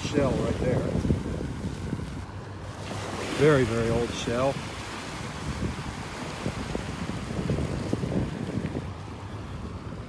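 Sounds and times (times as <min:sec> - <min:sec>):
small waves washing ashore: 0:00.0 - 0:10.0
wind rumbling on microphone: 0:00.0 - 0:10.0.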